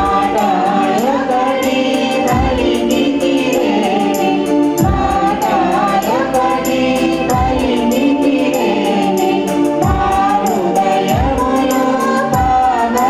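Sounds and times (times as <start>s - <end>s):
choir singing a hymn: 0.0s - 13.0s
fast ticking percussion: 0.0s - 13.0s.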